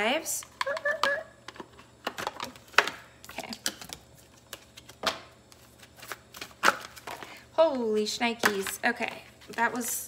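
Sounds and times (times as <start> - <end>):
cards being shuffled: 2.4 - 7.3.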